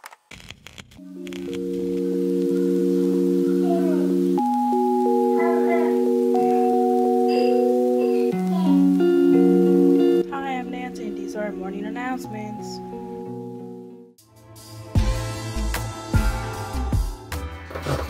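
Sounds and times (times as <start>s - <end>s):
sustained chords music: 1.0s - 17.4s.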